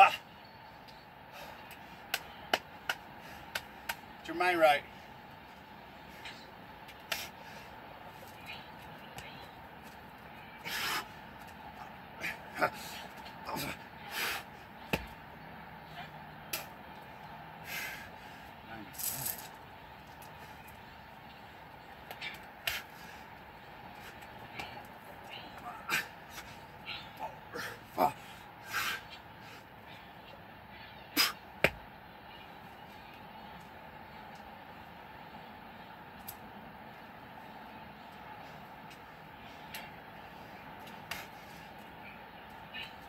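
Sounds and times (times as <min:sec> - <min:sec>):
man breathing heavily: 0:01.2 - 0:03.9, 0:04.8 - 0:08.9, 0:09.7 - 0:15.1, 0:17.5 - 0:18.7, 0:20.0 - 0:30.6.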